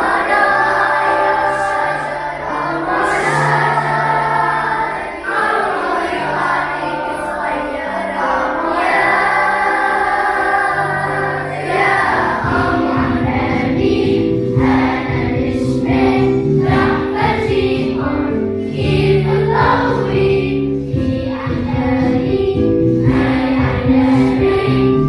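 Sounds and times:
children's choir singing: 0:00.0 - 0:25.0.

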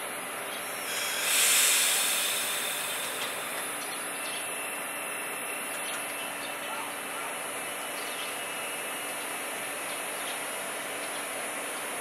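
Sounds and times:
low noise of waiting train: 0:00.0 - 0:12.0
train brakes air hiss: 0:00.6 - 0:05.1.

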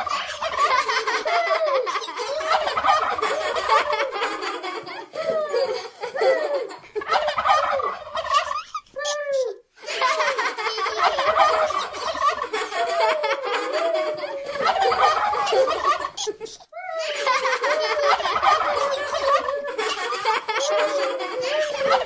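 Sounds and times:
turkey gobbling: 0:02.4 - 0:03.9, 0:07.0 - 0:09.2, 0:11.0 - 0:12.5.

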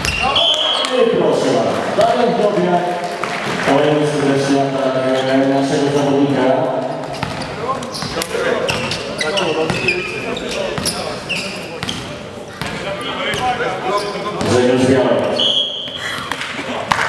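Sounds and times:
volleyball bouncing on floor: 0:00.0 - 0:00.4
voices in hall: 0:00.0 - 0:17.0.

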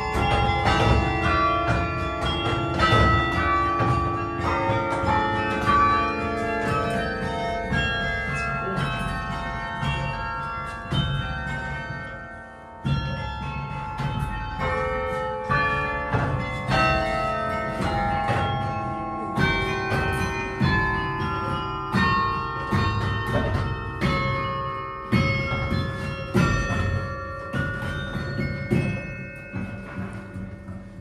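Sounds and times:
carillon bells melody: 0:00.0 - 0:31.0.

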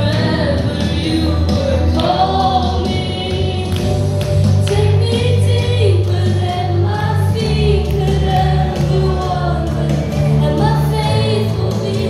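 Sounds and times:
congregation singing worship song: 0:00.0 - 0:12.0
instrumental bass accompaniment: 0:00.0 - 0:12.0.

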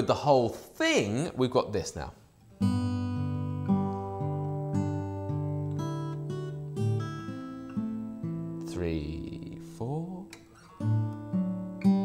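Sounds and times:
fingerstyle acoustic guitar: 0:02.3 - 0:12.0.

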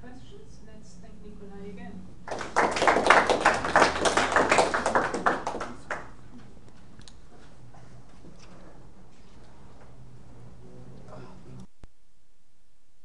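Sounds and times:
audience applauding: 0:02.3 - 0:06.1.

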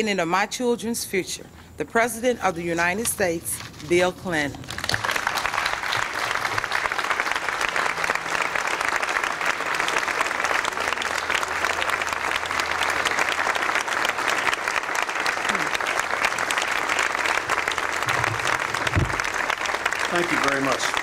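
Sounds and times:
audience applauding: 0:04.6 - 0:21.0.

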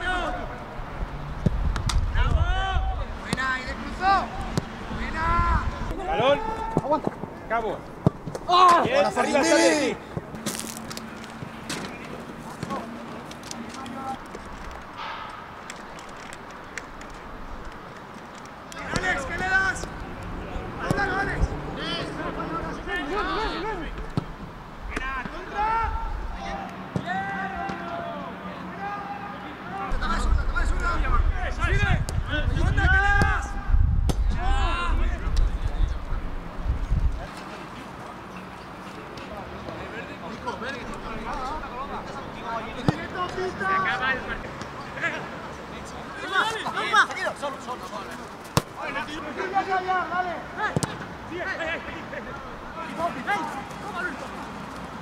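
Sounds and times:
players shouting: 0:00.0 - 0:00.8, 0:02.1 - 0:14.2, 0:18.7 - 0:35.4, 0:40.9 - 0:54.6.

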